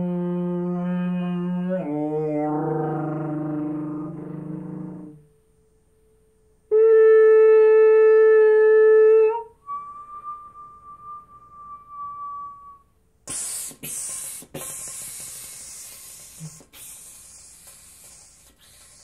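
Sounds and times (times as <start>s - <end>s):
solo trumpet: 0.0s - 3.2s, 6.7s - 13.0s
breathy air bursts: 13.2s - 19.0s.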